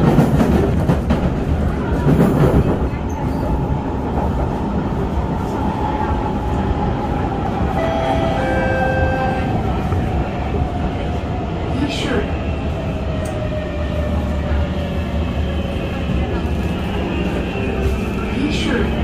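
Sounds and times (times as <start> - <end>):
wheels rumbling on rails: 0.0 - 19.0.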